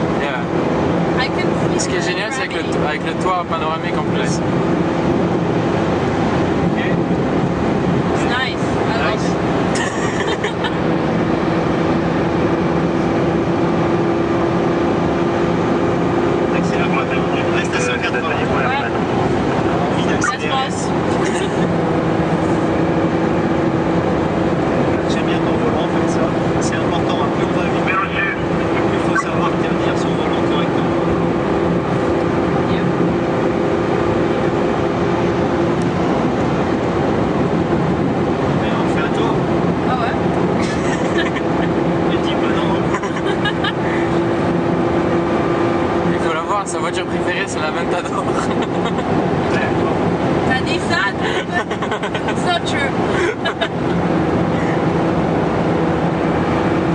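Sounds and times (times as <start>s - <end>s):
car engine while driving: 0.0s - 56.9s
tyre and road noise: 0.0s - 56.9s.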